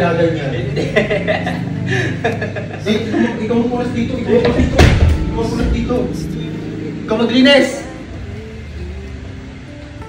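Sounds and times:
person chuckling: 0:00.7 - 0:03.4.

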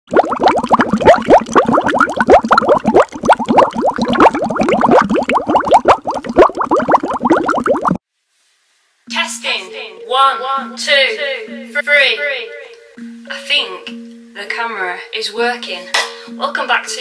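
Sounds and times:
rapid rising bloops: 0:00.1 - 0:08.0.

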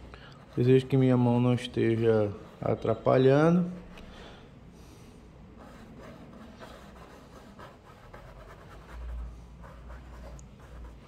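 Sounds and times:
paintbrush scratching on canvas: 0:05.5 - 0:11.0.

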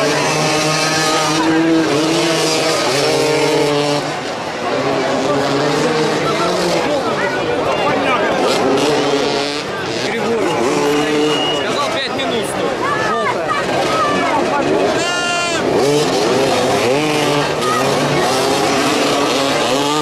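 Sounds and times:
motorcycle engines revving: 0:00.0 - 0:20.0.

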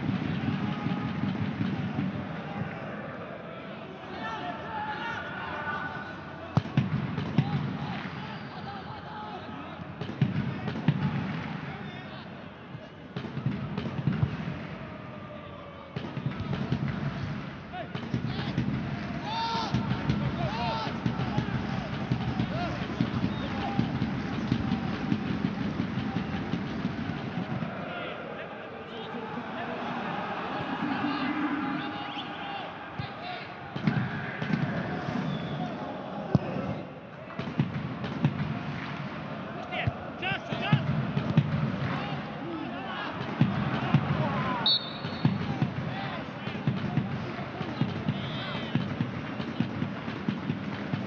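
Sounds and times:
stadium crowd murmur: 0:00.0 - 0:51.0.

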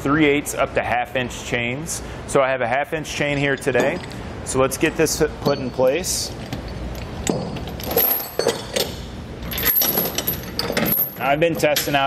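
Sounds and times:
chain links clinking: 0:06.6 - 0:11.2.

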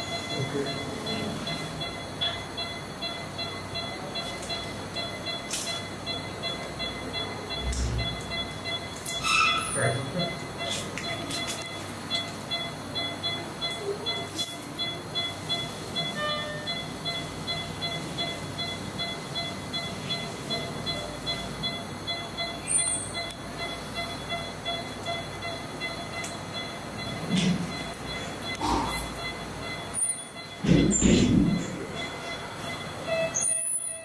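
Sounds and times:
equipment hum: 0:00.0 - 0:34.0
patient monitor beeping: 0:00.0 - 0:34.0.

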